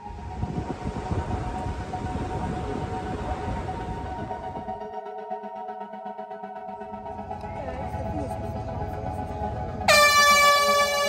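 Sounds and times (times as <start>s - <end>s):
soft background music: 0.0s - 11.0s
air horn blast: 9.9s - 11.0s.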